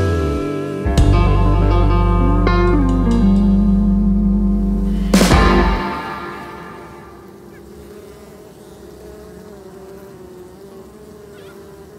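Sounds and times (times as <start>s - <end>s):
honeybees buzzing: 0.0s - 11.9s.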